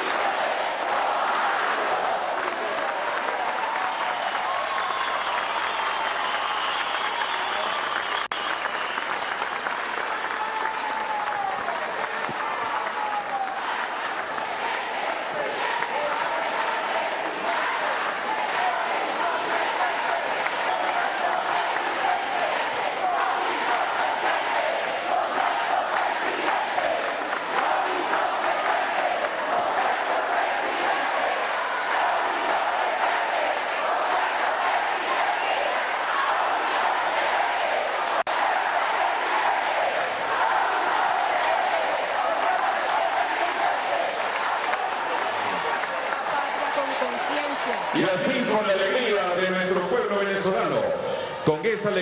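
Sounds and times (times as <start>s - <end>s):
crowd cheering and shouting: 0.0s - 52.0s.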